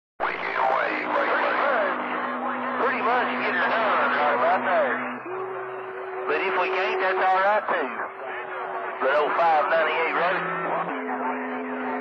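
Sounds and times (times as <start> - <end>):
garbled radio voices: 0.2 - 12.0
steady low radio tone: 0.2 - 12.0.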